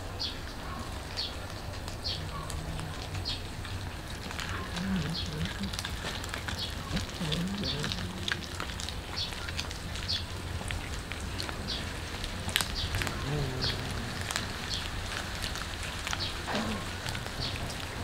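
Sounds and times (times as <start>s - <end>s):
cats chewing wet crunches: 0.4s - 18.0s.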